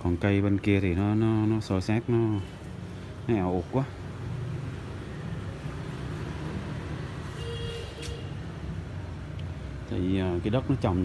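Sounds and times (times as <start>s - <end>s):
distant traffic rumble: 0.0s - 11.0s.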